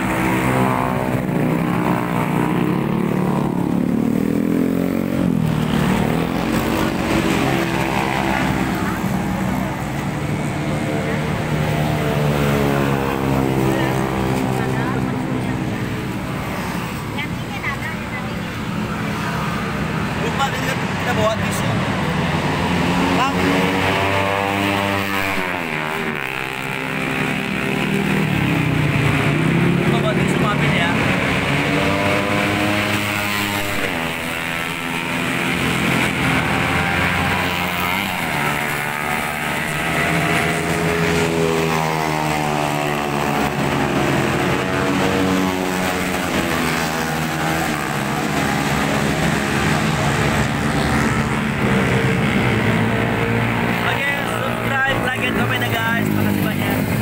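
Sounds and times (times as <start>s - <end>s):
cars passing: 0.0s - 57.0s
motorcycles passing: 0.0s - 57.0s.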